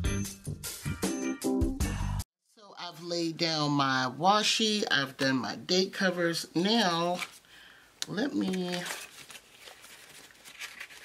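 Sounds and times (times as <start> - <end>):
paper sticker sheets rustling: 6.7 - 7.4, 8.2 - 11.0.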